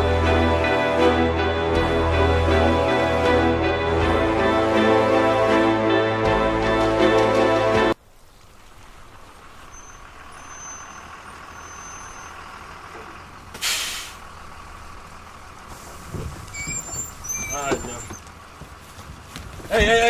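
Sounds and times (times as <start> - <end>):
rumble of traffic: 6.6 - 20.0
loud hiss of air: 13.6 - 14.2.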